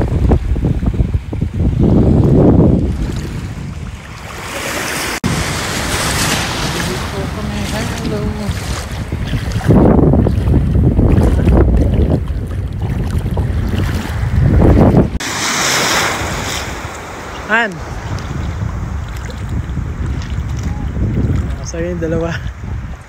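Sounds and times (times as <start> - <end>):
wind buffeting microphone: 0.0 - 23.0
lapping water: 6.3 - 14.9.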